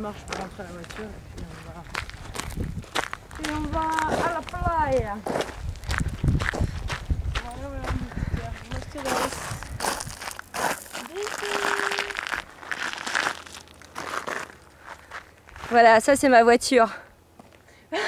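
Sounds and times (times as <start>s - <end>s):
footsteps on gravel: 0.0s - 16.1s.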